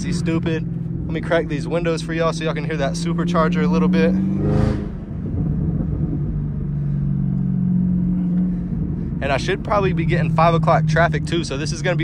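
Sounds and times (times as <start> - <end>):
car engine drone from inside cabin: 0.0 - 12.0.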